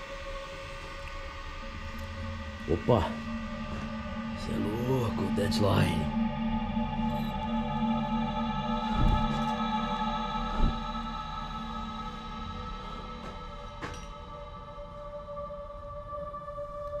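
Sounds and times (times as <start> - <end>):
eerie ambient drone music: 0.0 - 17.0
low thumps: 8.8 - 9.5, 10.4 - 11.2.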